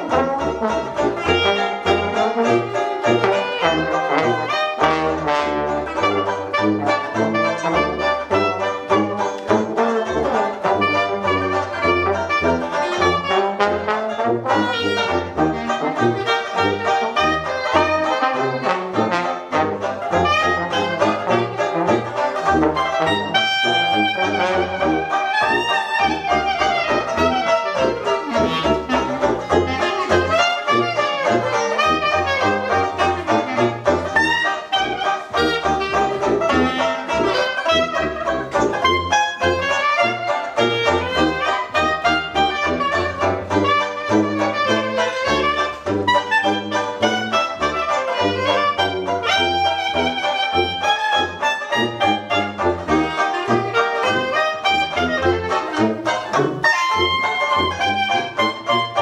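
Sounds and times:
clarinet: 0.0 - 59.0
strummed banjo: 0.0 - 59.0
trombone: 0.0 - 59.0
tuba bass line: 0.0 - 59.0.

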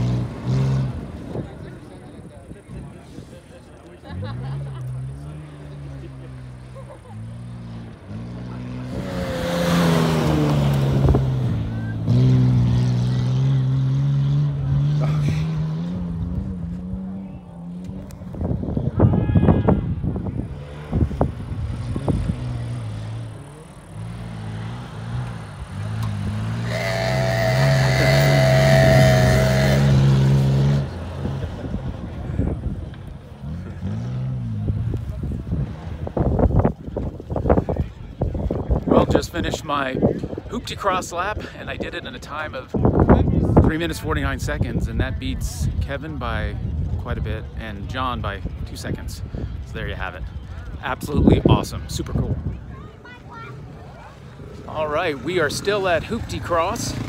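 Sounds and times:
engine revving: 0.0 - 1.1, 7.5 - 18.2, 20.5 - 31.8.

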